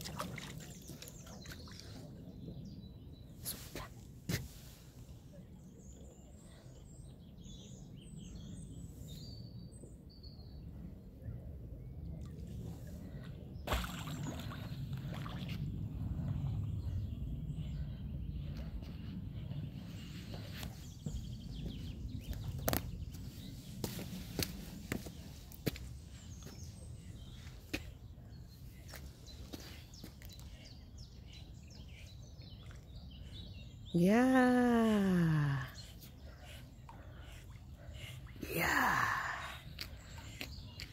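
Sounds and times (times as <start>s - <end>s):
small birds chirping: 0.0s - 15.6s, 16.2s - 40.9s
steady low rumble: 4.9s - 31.6s.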